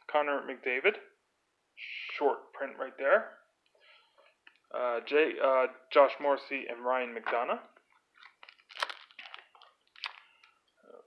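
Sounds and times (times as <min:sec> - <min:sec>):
plastic wrapper crinkling: 0:07.9 - 0:10.8
trading cards being flipped: 0:08.0 - 0:10.6.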